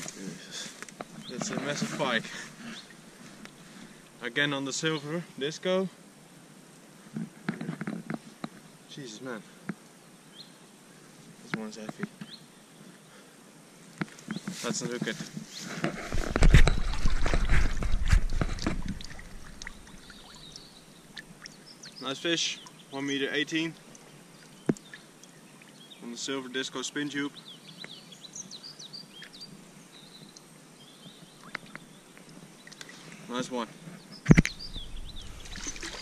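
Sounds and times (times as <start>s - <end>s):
faint outdoor hiss: 0.0s - 36.0s
rising bird chirp: 16.6s - 26.1s, 27.0s - 36.0s
faint clicks: 31.4s - 33.2s.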